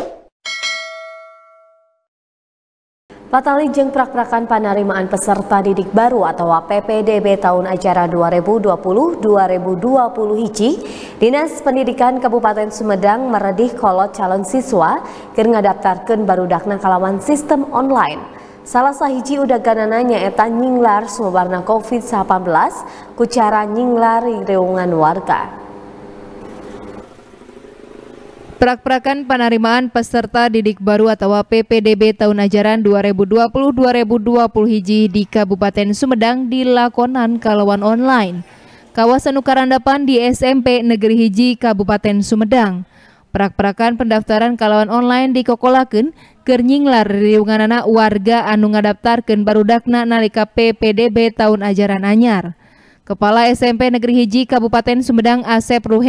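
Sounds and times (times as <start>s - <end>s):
bell-like ding: 0.4s - 2.1s
vehicle engine running: 24.8s - 28.6s
street noise: 25.0s - 28.8s.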